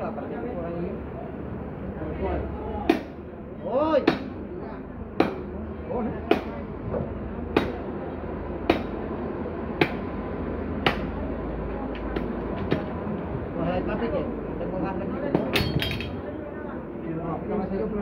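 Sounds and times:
machete chopping on wooden block: 2.9s - 3.2s, 4.0s - 4.3s, 5.2s - 5.5s, 6.3s - 6.6s, 7.6s - 7.8s, 8.7s - 9.0s, 9.8s - 10.1s, 10.8s - 11.1s.

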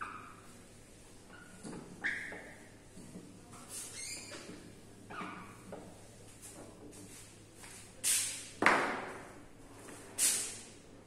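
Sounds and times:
short squeaks: 3.8s - 4.5s.

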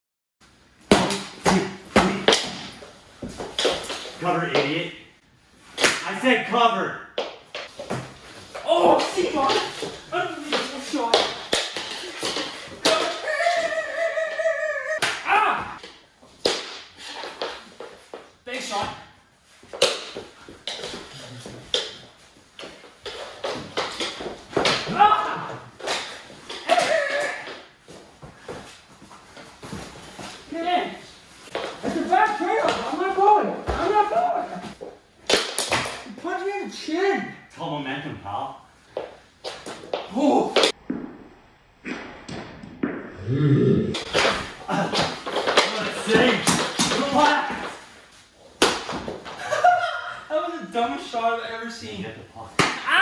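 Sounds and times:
players shouting and grunting: 12.2s - 15.9s, 24.7s - 25.8s, 26.5s - 27.6s
long yell: 12.9s - 15.8s.

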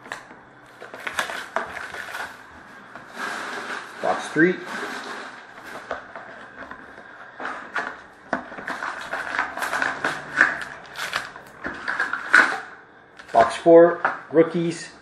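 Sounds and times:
cards and wrappers rustling: 0.0s - 12.6s.

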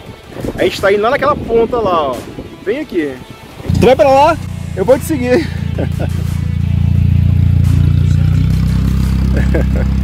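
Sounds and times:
low engine drone: 3.7s - 10.0s.

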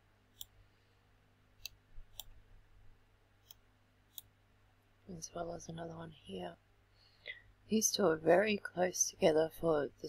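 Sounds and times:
computer mouse clicks: 0.3s - 0.6s, 1.6s - 2.4s, 3.4s - 4.3s.

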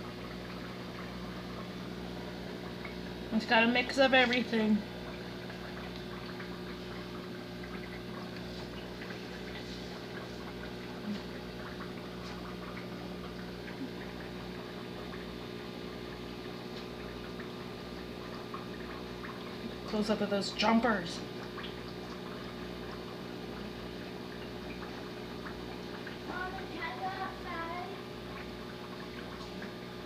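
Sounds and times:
water pump humming: 0.0s - 30.0s
water trickling and bubbling: 0.0s - 30.0s.

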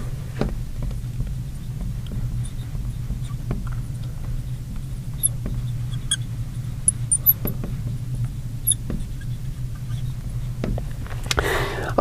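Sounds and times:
steady low hum: 0.0s - 12.0s
marker squeaking on glass: 1.0s - 10.7s.

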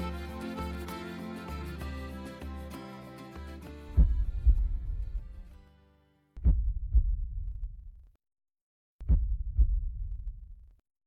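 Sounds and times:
low heartbeat-like thumps: 3.9s - 5.5s, 6.4s - 8.1s, 9.0s - 10.7s.

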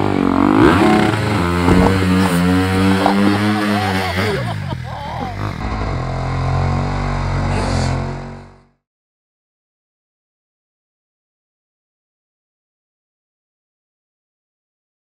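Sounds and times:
dirt bike engine revving: 0.0s - 8.6s
woman talking: 3.6s - 5.4s.

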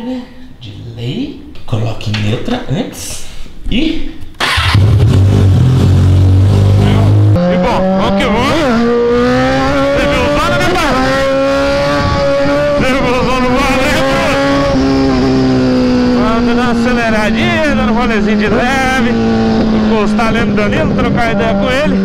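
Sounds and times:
motorcycle engine revving: 4.4s - 22.0s.

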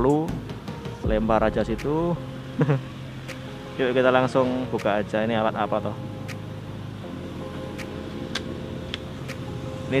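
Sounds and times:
road traffic hum: 0.0s - 10.0s.

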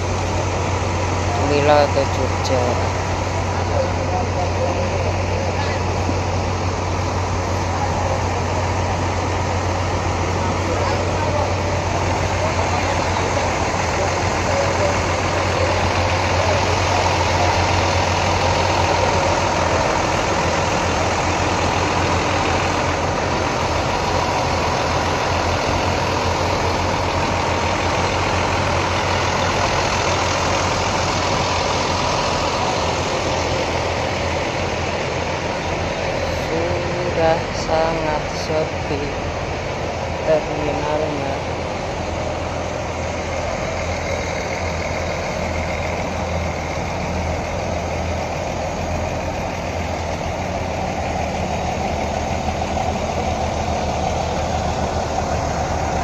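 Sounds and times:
bus diesel engine idling: 0.0s - 56.0s.

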